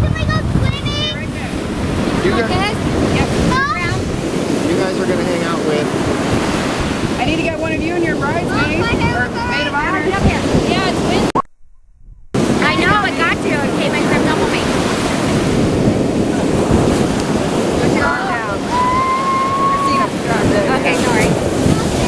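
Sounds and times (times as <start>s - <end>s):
ocean surf: 0.0s - 11.4s, 12.4s - 22.0s
wind buffeting the microphone: 0.0s - 22.0s
high-pitched cries: 18.7s - 20.1s.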